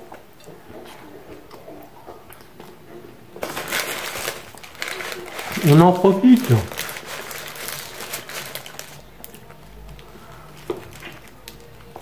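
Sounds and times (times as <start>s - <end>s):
wrapper crinkling and handling: 3.4s - 12.0s.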